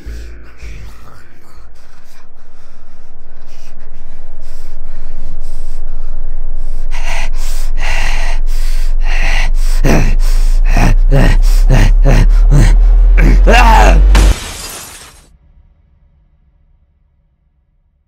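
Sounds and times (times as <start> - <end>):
low drone: 0.0 - 15.1
sharp hits: 13.5 - 15.2.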